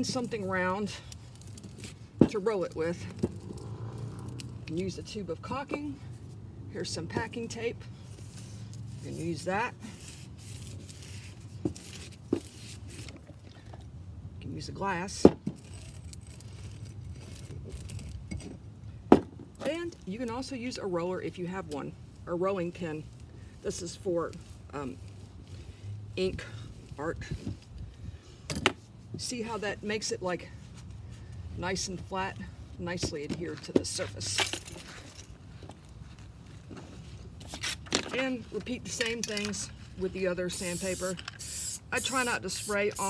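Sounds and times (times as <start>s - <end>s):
low steady rumble: 0.0s - 20.1s
sandpaper rustling: 8.1s - 13.1s, 40.3s - 43.0s.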